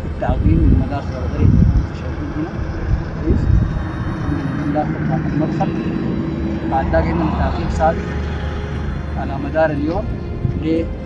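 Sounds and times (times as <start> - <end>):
engine rumbling: 0.0 - 11.0.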